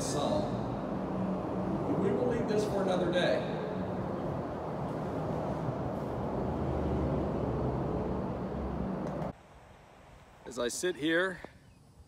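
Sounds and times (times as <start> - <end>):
traffic rumbling overhead: 0.0 - 9.5.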